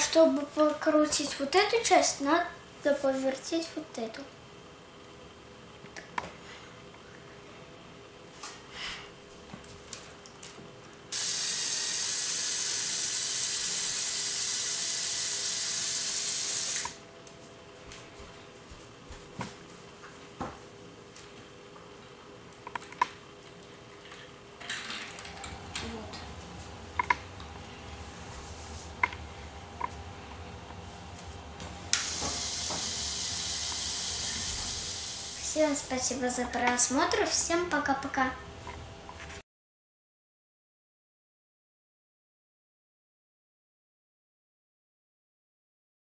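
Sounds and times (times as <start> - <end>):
toy electric motor whirring: 11.1 - 17.0, 31.9 - 35.6
steady hiss: 31.9 - 35.9.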